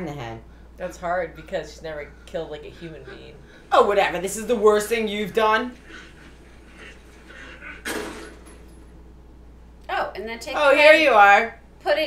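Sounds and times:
faint low hum: 0.0s - 12.0s
sudden bang: 7.8s - 8.6s.

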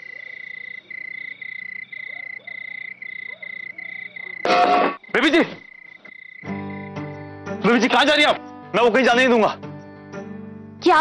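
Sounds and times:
faint frog croaks: 0.0s - 7.0s
crickets chirping: 0.0s - 10.8s.

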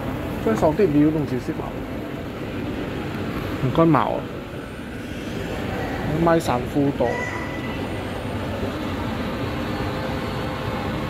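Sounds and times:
shopping mall background rumble: 0.0s - 11.0s.

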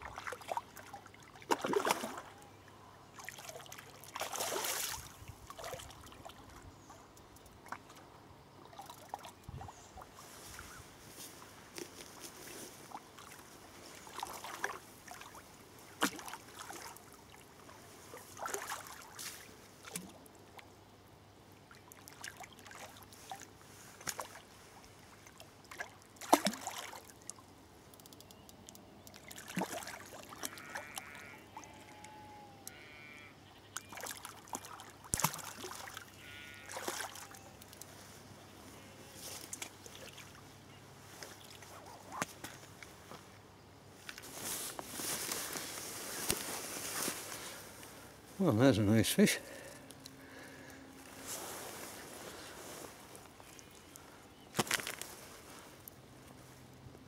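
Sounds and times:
moving water: 0.0s - 57.0s
sheep bleating: 30.4s - 33.4s, 36.2s - 37.4s.

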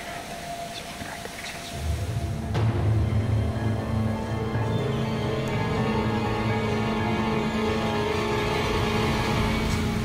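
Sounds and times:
low dark music: 0.0s - 10.0s
woodland background hiss: 0.0s - 10.0s.

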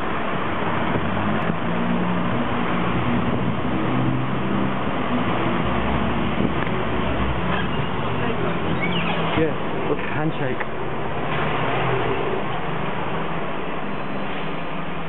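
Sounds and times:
street traffic noise: 0.0s - 15.0s
vehicle engine humming: 0.0s - 15.0s.

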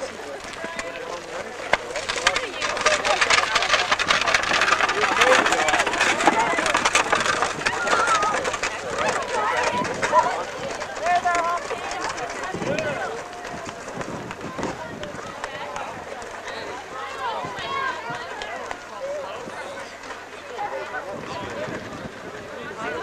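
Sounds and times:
group of people talking: 0.0s - 23.0s.

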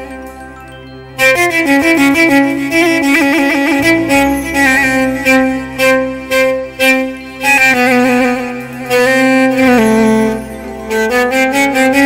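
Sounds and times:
low musical backing: 0.0s - 12.0s
violin melody with slides: 0.0s - 12.0s.

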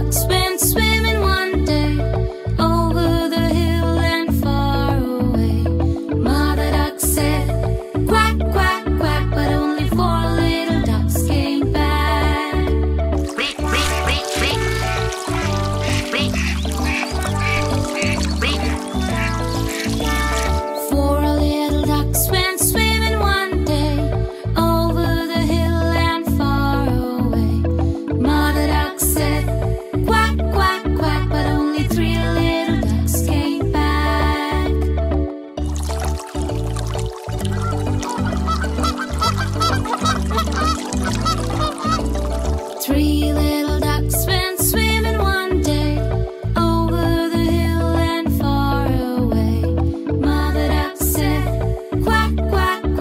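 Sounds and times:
children's song music with bass: 0.0s - 53.0s
cartoon duck quacking: 13.2s - 20.6s, 37.6s - 42.0s.

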